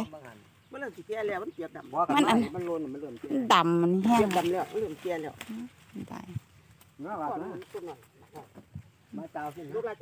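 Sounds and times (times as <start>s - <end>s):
woman speaking: 3.4s - 4.3s.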